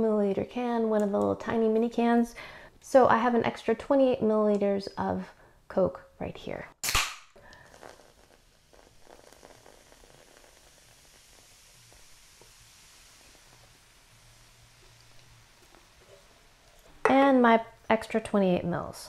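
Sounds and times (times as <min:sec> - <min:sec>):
soda pouring and fizzing: 0:07.4 - 0:17.1.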